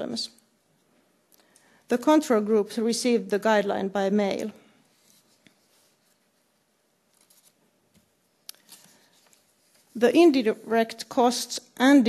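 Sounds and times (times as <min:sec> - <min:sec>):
faint rustle: 0:04.6 - 0:10.2.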